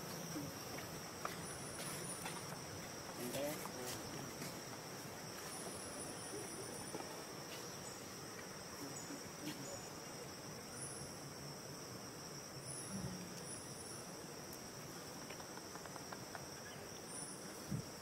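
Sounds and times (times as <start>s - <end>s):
high-pitched insect chorus: 0.0s - 18.0s.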